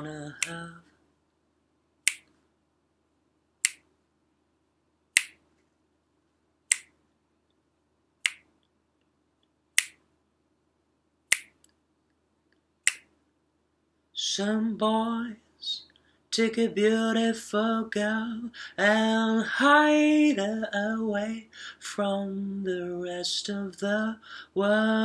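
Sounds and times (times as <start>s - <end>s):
finger snaps: 0.4s - 0.6s, 2.1s - 2.3s, 3.6s - 3.9s, 5.2s - 5.4s, 6.7s - 7.0s, 8.2s - 8.5s, 9.8s - 10.0s, 11.3s - 11.7s, 12.9s - 13.1s.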